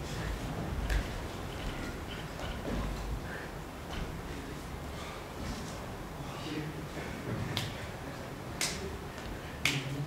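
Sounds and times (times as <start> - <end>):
low room noise: 0.0 - 10.0
short sharp snaps: 8.6 - 8.9.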